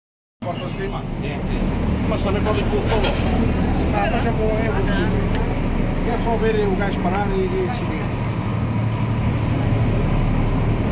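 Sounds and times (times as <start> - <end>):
boat engine humming: 0.4 - 10.9.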